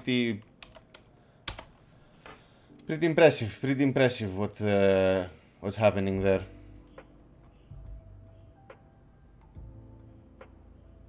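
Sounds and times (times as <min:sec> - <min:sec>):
computer keyboard keystrokes: 0:00.4 - 0:01.8.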